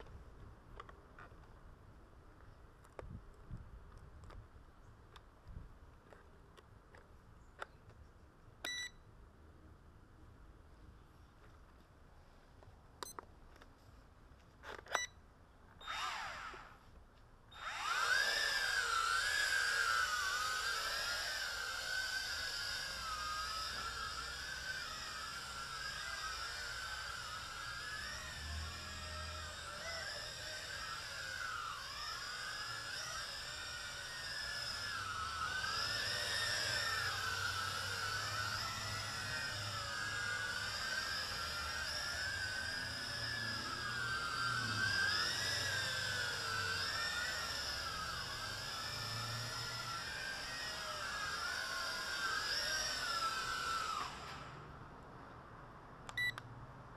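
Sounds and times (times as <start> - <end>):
short beeps: 8.7 - 9.0, 56.2 - 56.4
toy quadcopter motors whining: 15.8 - 16.8, 17.5 - 54.8.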